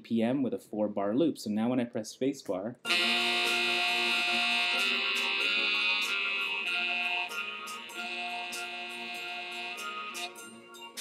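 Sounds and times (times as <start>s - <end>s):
droning pitched tones: 2.9s - 10.5s
moving melodic line: 2.9s - 11.0s.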